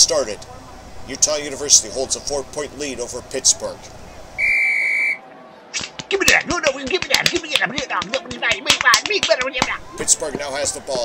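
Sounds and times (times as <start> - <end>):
referee's whistle blast: 4.4 - 5.2.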